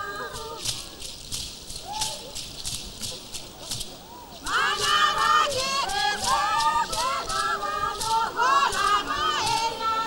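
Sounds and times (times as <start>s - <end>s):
rattles shaken rhythmically: 0.0s - 10.0s.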